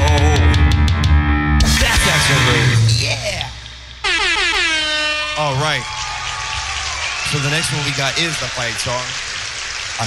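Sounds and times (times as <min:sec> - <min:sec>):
live band playing: 0:00.0 - 0:06.6
loud horn-like tone: 0:04.0 - 0:05.8.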